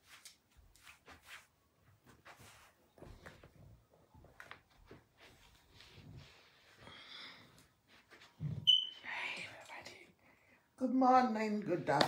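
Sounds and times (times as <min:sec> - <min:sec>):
woman whispering: 0:09.0 - 0:10.2
woman speaking: 0:10.8 - 0:12.0.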